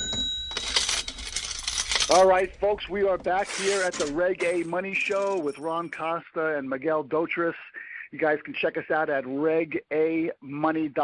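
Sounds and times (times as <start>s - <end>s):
bright ringing chime: 0.0s - 2.2s
metallic clinks clattering: 0.0s - 3.0s.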